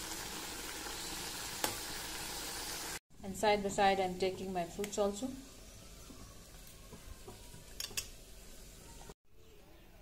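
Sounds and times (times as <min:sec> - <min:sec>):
vegetables sizzling in a pan: 0:00.0 - 0:03.0, 0:03.6 - 0:09.2.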